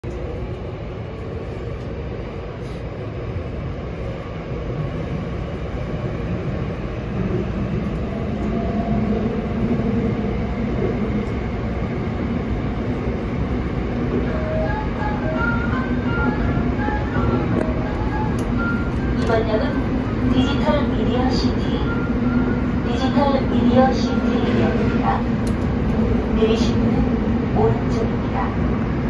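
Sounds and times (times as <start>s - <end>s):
train wheels and motors rumbling: 0.0s - 29.0s.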